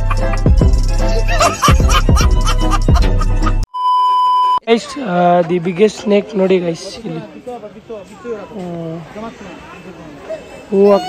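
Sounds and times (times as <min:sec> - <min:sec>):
comedy meme music: 0:00.0 - 0:03.7
high electronic beep: 0:03.7 - 0:04.6.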